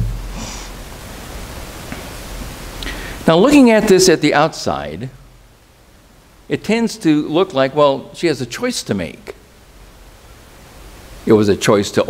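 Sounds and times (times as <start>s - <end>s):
faint low hum: 0.0s - 12.0s
room tone hiss: 0.0s - 12.0s.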